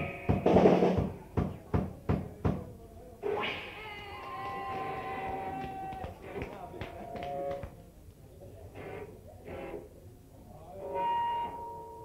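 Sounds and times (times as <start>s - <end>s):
drum-heavy punk music: 0.0s - 1.2s
sharp knocks: 0.3s - 2.7s.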